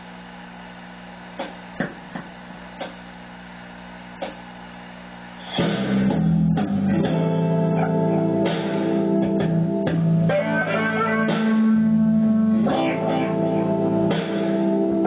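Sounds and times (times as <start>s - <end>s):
electrical hum: 0.0s - 15.0s
blues backing track: 5.5s - 15.0s
electric guitar playing: 5.6s - 15.0s.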